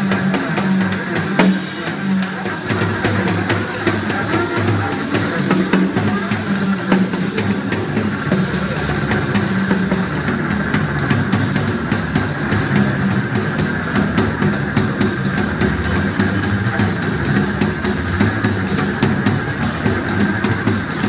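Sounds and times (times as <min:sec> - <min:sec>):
double bass: 0:00.0 - 0:21.0
drum and cymbal strokes: 0:00.0 - 0:21.0.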